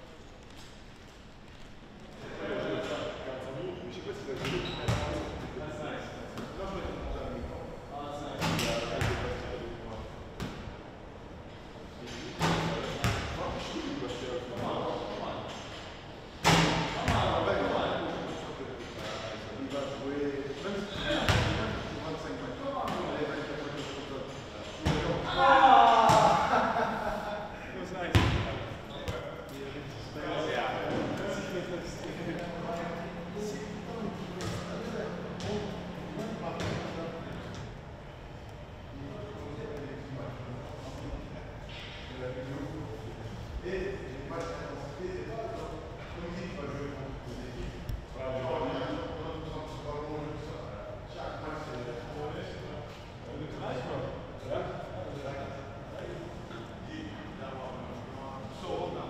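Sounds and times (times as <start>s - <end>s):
men's indistinct voices: 11.6s - 59.0s
men shouting: 25.2s - 26.7s
ball bouncing on hard surfaces: 28.1s - 29.3s.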